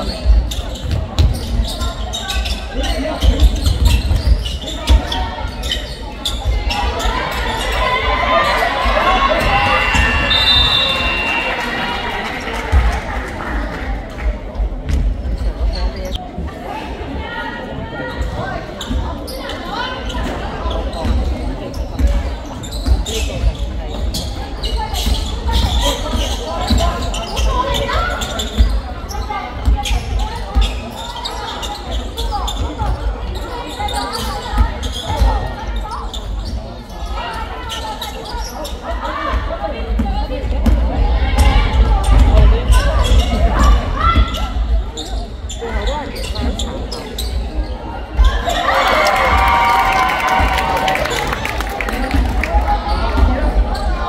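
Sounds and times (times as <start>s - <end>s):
basketball bouncing on wooden court: 0.3s - 1.7s.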